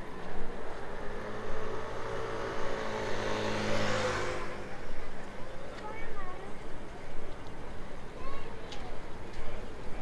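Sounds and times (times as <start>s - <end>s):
city street traffic: 0.0s - 10.0s
vehicle engine passing by: 0.5s - 4.9s.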